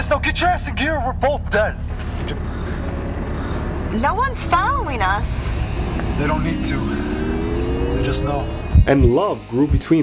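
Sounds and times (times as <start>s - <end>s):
car engine rumble inside cabin: 4.6s - 8.9s.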